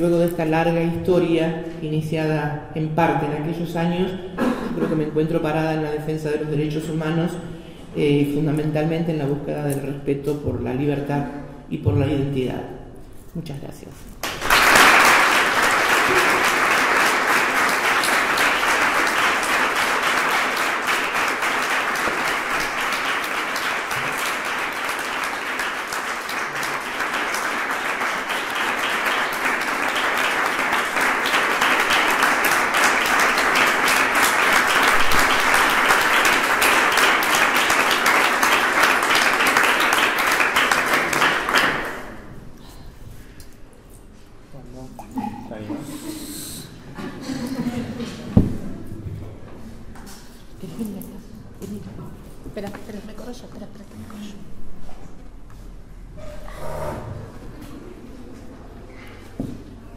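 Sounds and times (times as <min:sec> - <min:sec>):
audience applauding: 0:14.2 - 0:42.2.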